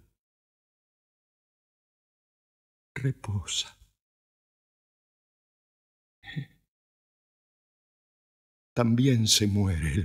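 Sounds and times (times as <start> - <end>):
man speaking: 8.8 - 10.0.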